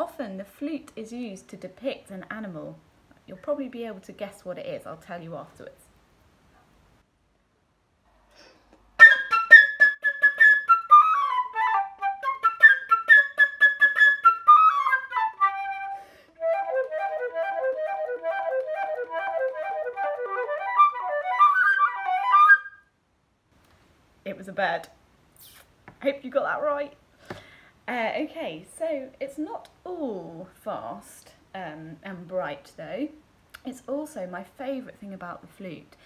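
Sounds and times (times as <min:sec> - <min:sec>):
flute playing fast runs: 0:09.0 - 0:22.8.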